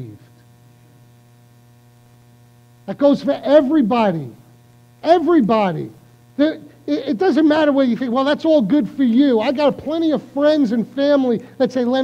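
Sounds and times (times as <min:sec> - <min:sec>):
electrical mains hum: 0:00.0 - 0:12.0
faint buzz: 0:00.0 - 0:12.0
man speaking: 0:02.9 - 0:04.4, 0:05.0 - 0:12.0.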